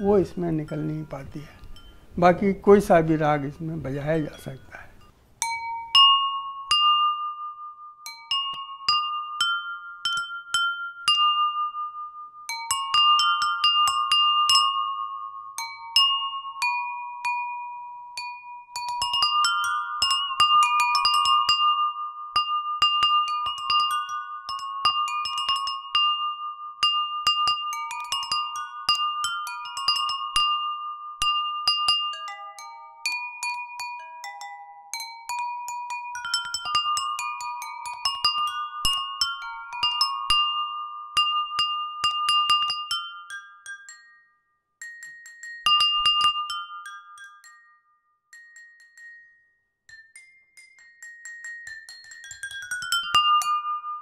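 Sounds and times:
ceramic bowls struck with sticks: 0.0s - 54.0s.

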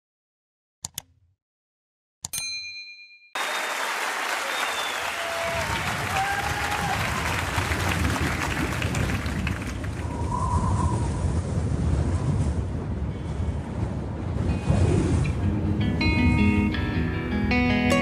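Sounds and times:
audience applauding: 3.4s - 10.2s
deep rumble: 7.8s - 16.5s.

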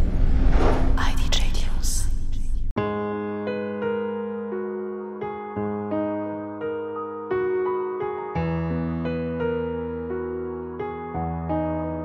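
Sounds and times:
deep rumble: 0.0s - 2.8s
whispered voice: 1.0s - 2.7s.

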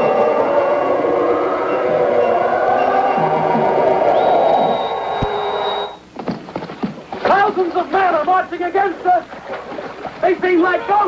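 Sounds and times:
horse galloping through water splashing: 6.2s - 10.4s.

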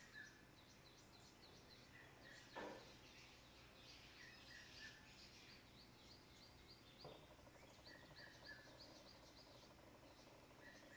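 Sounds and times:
faint bird chirps: 0.0s - 10.9s.

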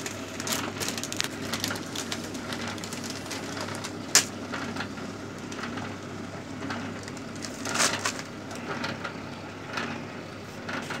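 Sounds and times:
band sealer motor hum: 0.0s - 11.0s.

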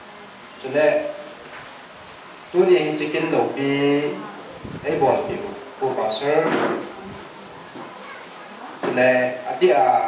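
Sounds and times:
man speaking into a microphone: 4.8s - 6.6s.

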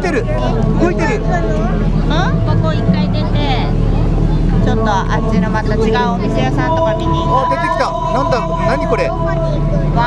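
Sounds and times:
children and adults talking: 0.0s - 10.0s
steady low hum: 0.0s - 10.0s.

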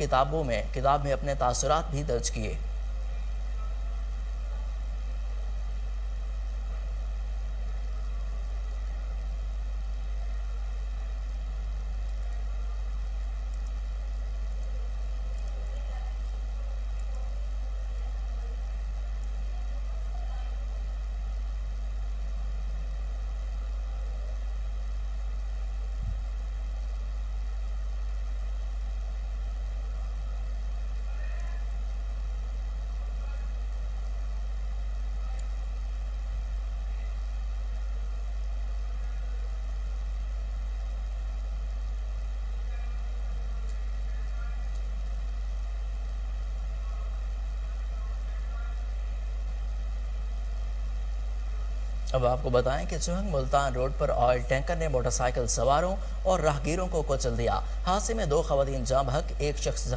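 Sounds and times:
low hum: 0.0s - 59.9s.

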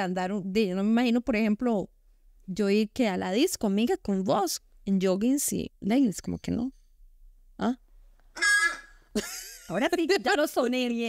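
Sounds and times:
rubber toy squeaking: 8.4s - 9.0s.

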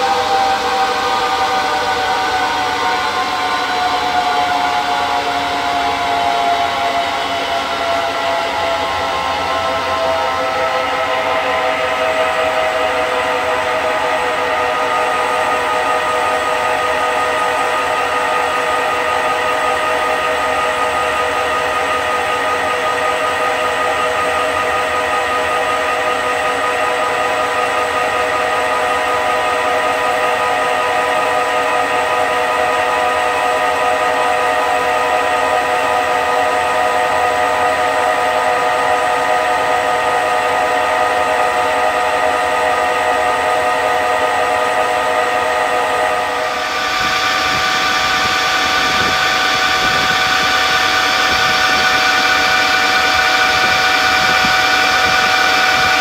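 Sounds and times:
lathe whine: 0.0s - 56.0s.

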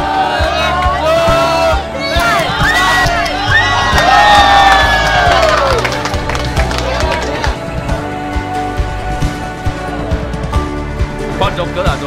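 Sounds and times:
young men shouting and cheering: 0.0s - 8.3s
background music with steady beat: 0.0s - 12.0s.

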